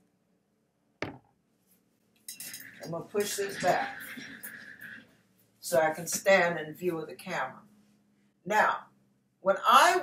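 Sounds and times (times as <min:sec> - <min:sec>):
sharp knock: 0:01.0 - 0:01.2.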